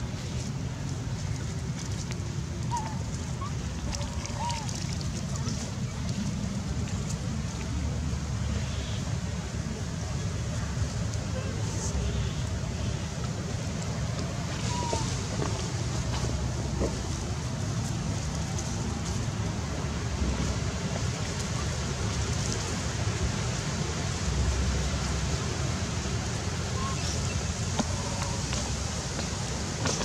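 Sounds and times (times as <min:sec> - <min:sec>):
low outdoor rumble: 0:00.0 - 0:30.0.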